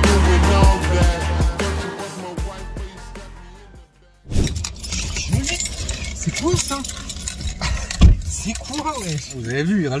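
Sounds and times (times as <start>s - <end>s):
light rattling clicks: 4.4s - 10.0s
road and engine rumble: 4.4s - 10.0s.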